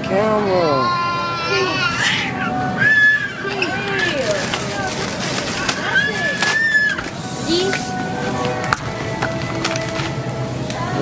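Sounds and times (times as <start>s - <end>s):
young children calling out: 0.6s - 4.2s.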